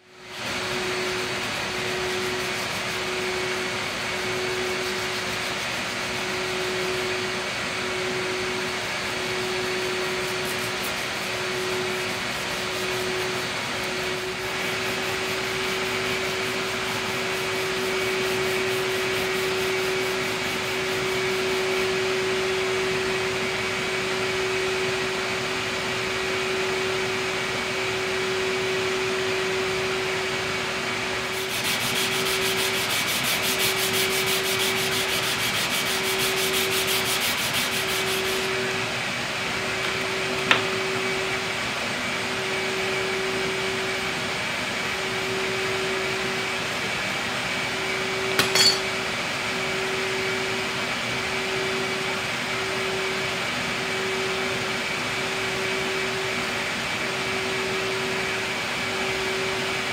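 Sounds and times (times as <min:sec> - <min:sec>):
machine hum: 0:00.0 - 0:46.4
sandpaper sanding wood: 0:00.3 - 0:22.8, 0:31.2 - 0:38.9.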